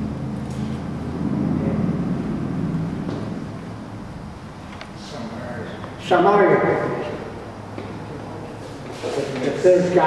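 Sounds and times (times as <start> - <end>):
low hum with held tones: 0.0 - 10.0.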